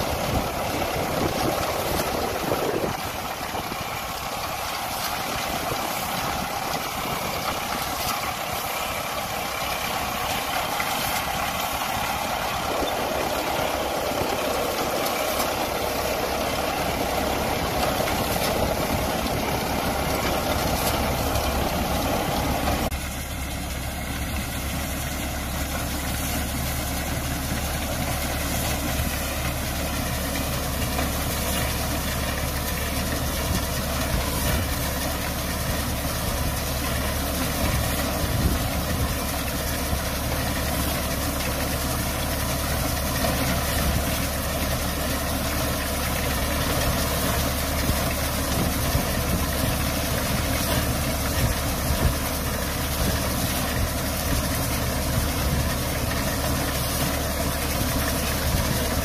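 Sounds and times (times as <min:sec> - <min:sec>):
reaper-binder cutting wheat: 0:00.0 - 0:59.0
tractor diesel engine running: 0:00.0 - 0:59.0.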